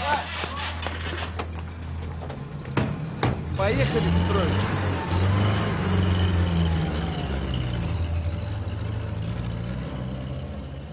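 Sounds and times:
vehicle engine driving off: 0:01.5 - 0:10.9.

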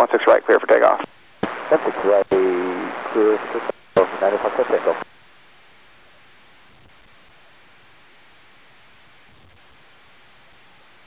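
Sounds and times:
radio carrier hiss: 0:00.0 - 0:05.1
radio voice transmissions: 0:00.0 - 0:05.1.

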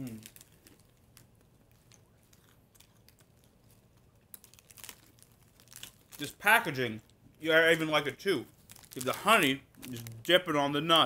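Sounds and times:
plastic snack bag crinkling: 0:00.0 - 0:07.2, 0:08.5 - 0:10.3.

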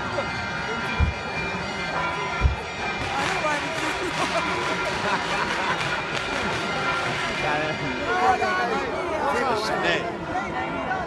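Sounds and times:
crowd voices: 0:00.0 - 0:11.0
short low thumps: 0:01.0 - 0:01.2.

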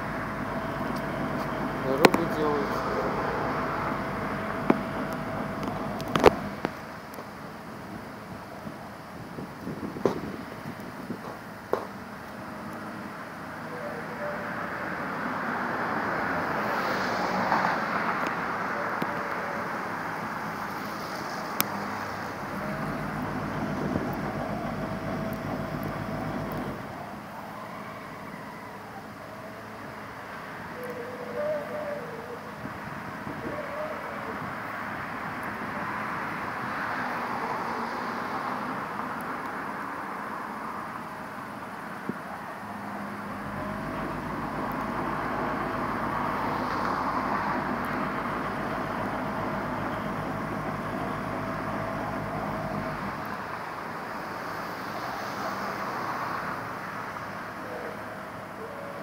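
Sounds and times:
construction machinery engines: 0:00.0 - 0:59.0
traffic rumble: 0:00.0 - 0:59.0.

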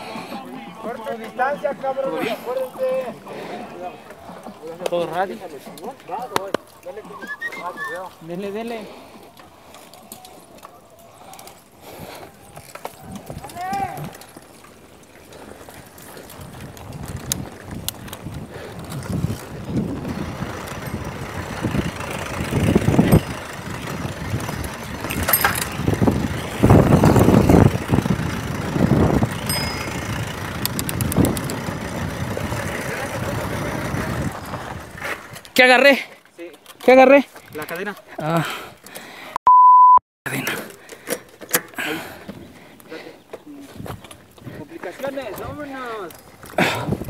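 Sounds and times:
bike tyre noise on dirt: 0:07.8 - 0:35.9, 0:41.9 - 0:47.0
bike rattling and knocking: 0:12.0 - 0:38.0, 0:43.8 - 0:47.0.

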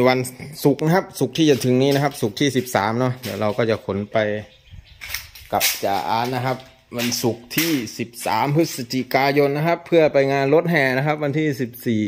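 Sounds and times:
man speaking: 0:00.0 - 0:04.6, 0:05.4 - 0:12.0.

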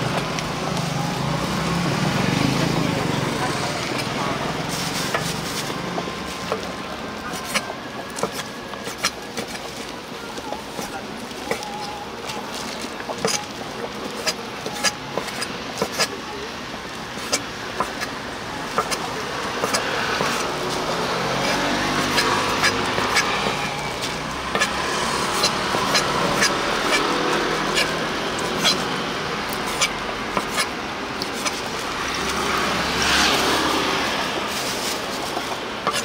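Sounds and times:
knife chopping on wooden board: 0:14.1 - 0:16.1, 0:19.6 - 0:20.5, 0:24.5 - 0:27.0, 0:29.7 - 0:30.7.

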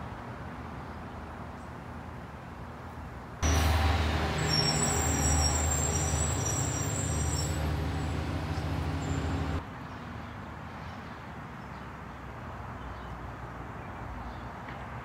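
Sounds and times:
faint outdoor background: 0:00.0 - 0:15.0
truck engine humming: 0:03.4 - 0:09.6.

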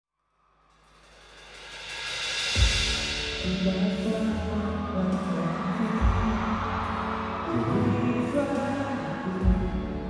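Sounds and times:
live concert noise: 0:02.6 - 0:10.0.

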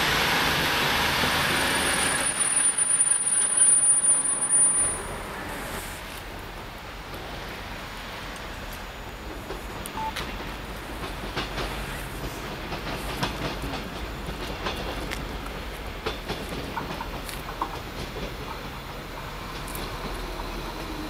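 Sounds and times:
train rumbling: 0:00.0 - 0:21.0
wheels clicking over rails: 0:08.4 - 0:21.0.

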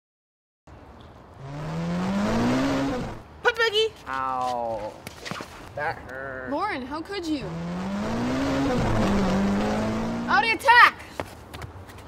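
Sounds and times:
road noise rushing: 0:00.8 - 0:03.4, 0:06.9 - 0:10.6
car engine accelerating: 0:01.4 - 0:03.2, 0:07.4 - 0:10.3.

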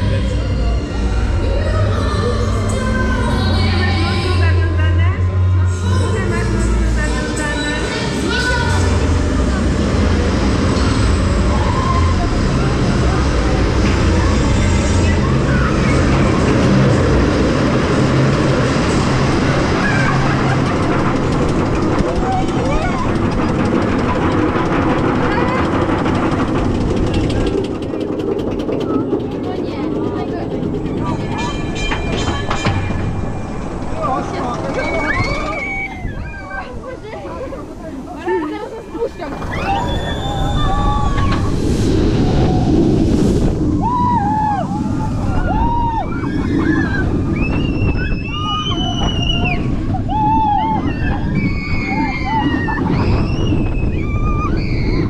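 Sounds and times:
roller coaster lift rumble: 0:00.0 - 0:55.0.

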